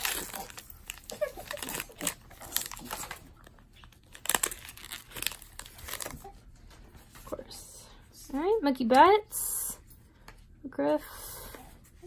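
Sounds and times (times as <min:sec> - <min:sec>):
foil wrapper crinkling and tearing: 0:00.0 - 0:06.3.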